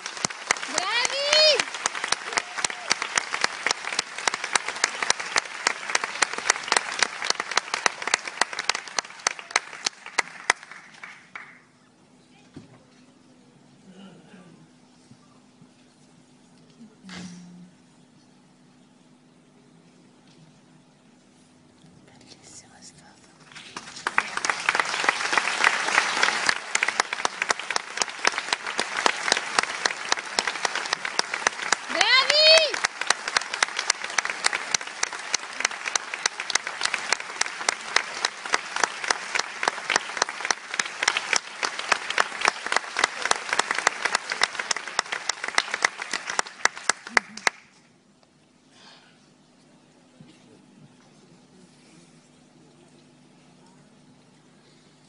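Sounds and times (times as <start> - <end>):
audience applauding and cheering: 0.0 - 11.6, 23.6 - 47.8.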